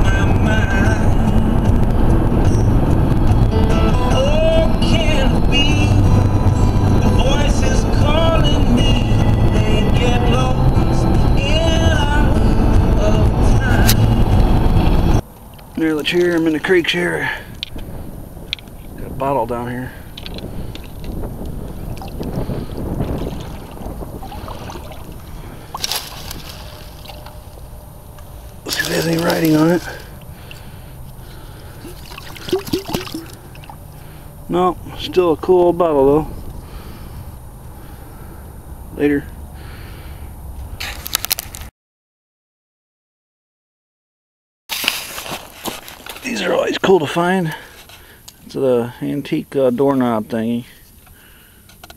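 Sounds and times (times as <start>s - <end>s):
wind rumbling on microphone: 0.0s - 41.7s
footsteps crunching on gravel: 22.0s - 27.6s, 28.2s - 30.2s, 44.7s - 46.7s
footsteps splashing through water: 23.0s - 27.3s, 28.7s - 30.2s, 31.8s - 33.8s
dry leaves crackling: 23.7s - 31.2s, 44.7s - 46.4s.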